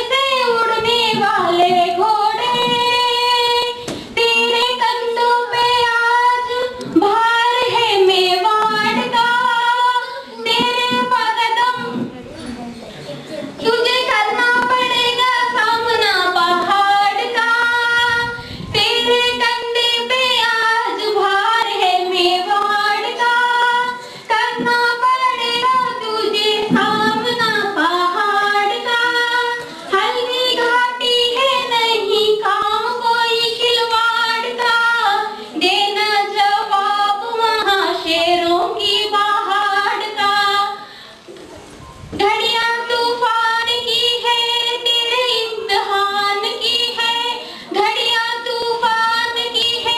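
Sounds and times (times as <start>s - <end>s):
woman singing: 0.0s - 12.0s, 13.6s - 40.8s, 42.2s - 49.9s
singer breathing: 18.4s - 18.7s, 24.0s - 24.3s, 40.8s - 41.3s, 47.4s - 47.7s.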